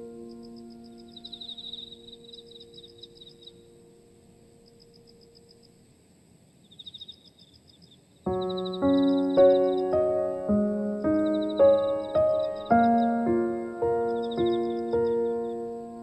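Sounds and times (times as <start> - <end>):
piano chord: 0.0 - 4.8, 8.3 - 16.0
high chirps and trills: 0.0 - 5.8, 8.3 - 16.0.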